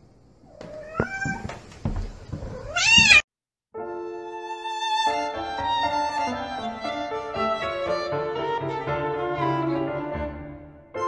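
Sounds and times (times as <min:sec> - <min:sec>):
cat meowing: 0:00.5 - 0:01.5, 0:02.5 - 0:03.2, 0:04.3 - 0:05.3.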